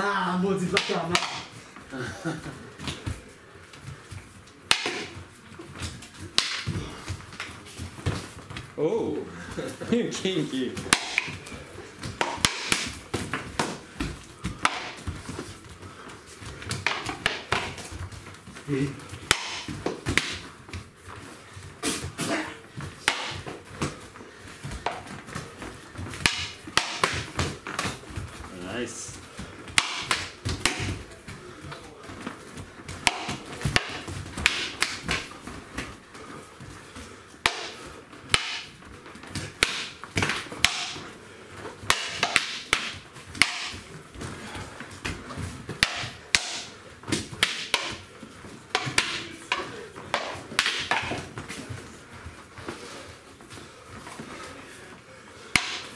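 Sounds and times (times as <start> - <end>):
sparring sticks clacking: 0.6 - 1.6, 4.6 - 8.6, 10.1 - 15.8, 16.4 - 24.0, 24.6 - 36.0, 37.4 - 51.9, 55.5 - 55.9
sticks striking each other: 0.7 - 1.5, 4.7 - 5.2, 6.4 - 6.8, 10.9 - 11.4, 12.2 - 13.0, 14.6 - 15.0, 19.2 - 20.4, 23.0 - 23.5, 26.2 - 27.5, 29.8 - 31.0, 33.0 - 35.2, 37.4 - 38.7, 39.6 - 41.1, 41.9 - 43.8, 45.8 - 48.0, 48.7 - 51.2, 55.5 - 55.9.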